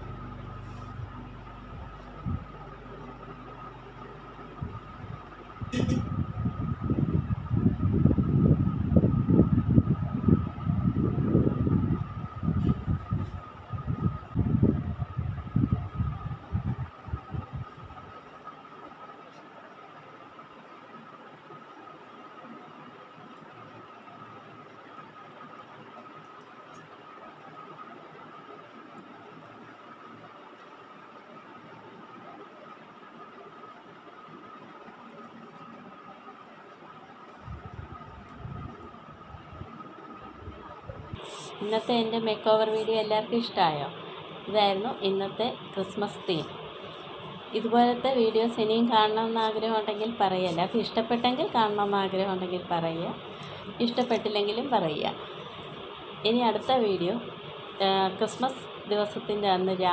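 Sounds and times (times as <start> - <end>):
thin high hum: 0.0 - 59.9
wind buffeting microphone: 1.7 - 2.6, 4.6 - 18.1, 37.4 - 41.4
faint hiss: 19.2 - 59.9.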